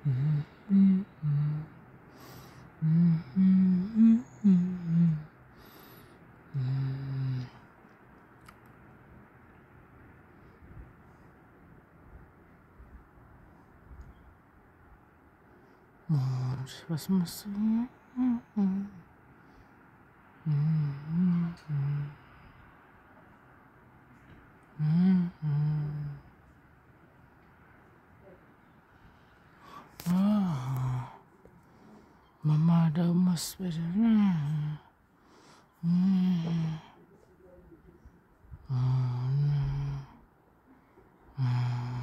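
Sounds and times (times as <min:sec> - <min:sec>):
person humming a tune: 0:00.0 - 0:05.4, 0:06.5 - 0:07.6, 0:16.1 - 0:19.0, 0:20.4 - 0:22.3, 0:24.8 - 0:26.3, 0:35.8 - 0:37.0, 0:38.7 - 0:40.2, 0:41.4 - 0:42.0.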